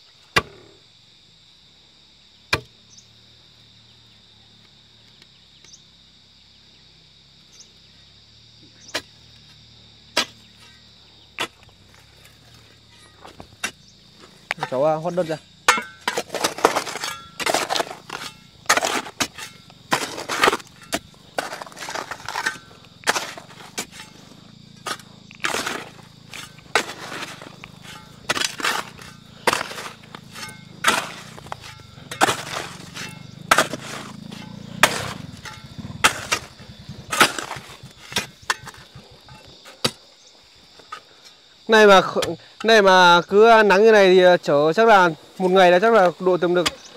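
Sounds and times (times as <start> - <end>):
metal tools striking stone: 15.7 - 16.2.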